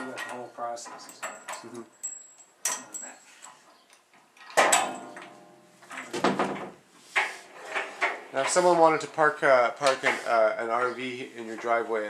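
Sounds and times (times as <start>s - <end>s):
ringing metal clanks: 0.0s - 3.6s
metal clunks and knocks: 4.5s - 8.8s.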